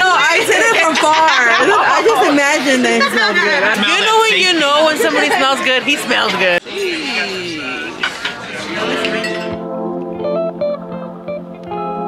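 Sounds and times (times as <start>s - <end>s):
voices at a table: 0.0s - 9.8s
glassware clinking: 8.0s - 9.6s
music with held notes: 8.0s - 12.0s.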